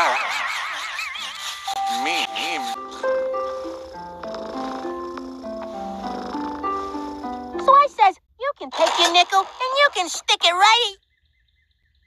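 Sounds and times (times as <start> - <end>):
gentle cartoon music: 0.8 - 8.1
cartoon cat purring: 2.5 - 10.4.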